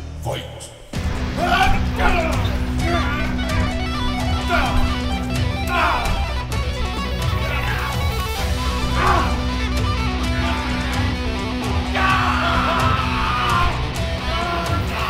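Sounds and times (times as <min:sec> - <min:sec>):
electric guitar playing heavy rock: 0:01.0 - 0:15.0.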